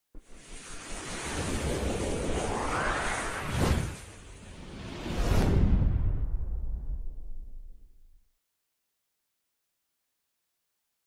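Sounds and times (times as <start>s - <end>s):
rushing whoosh: 0.3s - 7.0s.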